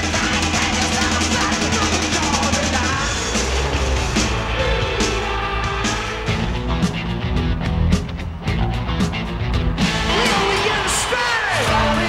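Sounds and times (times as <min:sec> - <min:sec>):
sustained bass line: 0:00.0 - 0:10.8
drum kit: 0:00.0 - 0:12.0
rock music: 0:00.0 - 0:12.0.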